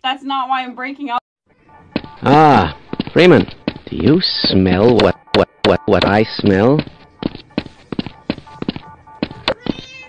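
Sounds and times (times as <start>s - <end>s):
cat meowing: 9.5s - 10.0s.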